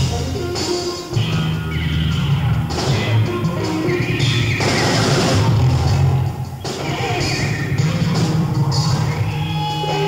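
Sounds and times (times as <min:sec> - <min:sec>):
jazz fusion band playing live: 0:00.0 - 0:10.0.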